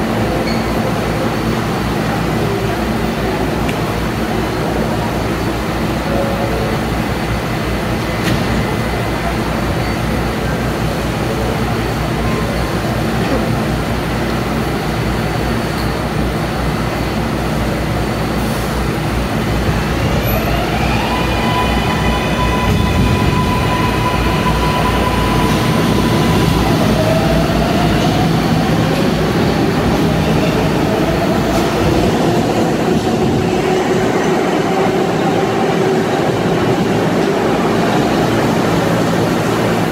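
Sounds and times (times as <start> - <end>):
subway train rumbling: 0.0 - 39.9.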